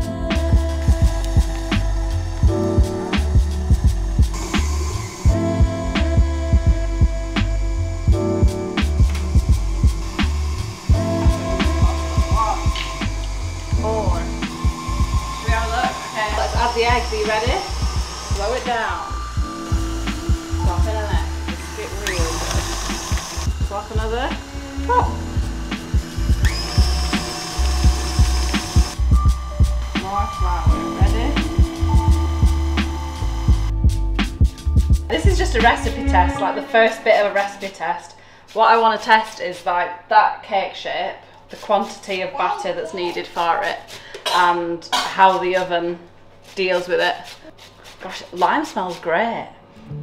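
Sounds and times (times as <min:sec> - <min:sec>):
music with bass beat and vocals: 0:00.0 - 0:04.3
electric stand mixer running: 0:00.7 - 0:33.8.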